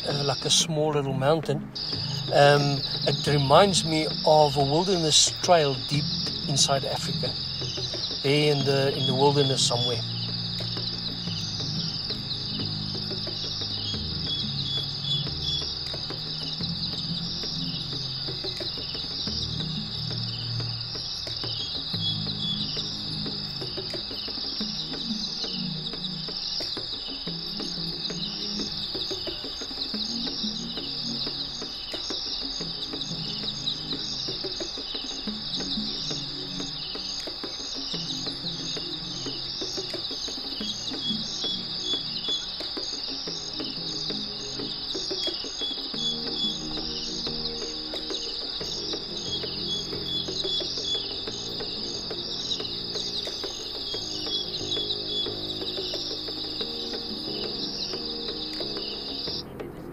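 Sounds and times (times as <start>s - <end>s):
insect chorus trilling: 0.0s - 59.9s
soft music of sustained chords: 0.0s - 59.9s.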